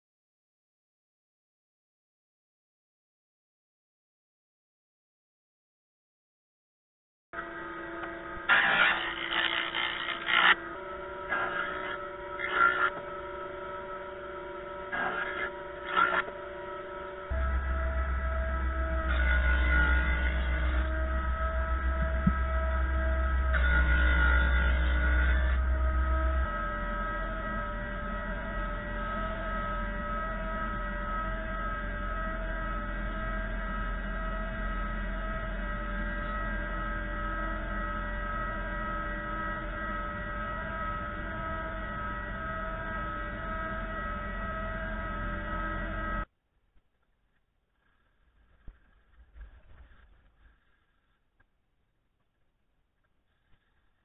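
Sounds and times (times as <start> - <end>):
planer cutting wood: 7.4 - 46.3
planer motor humming: 7.4 - 46.3.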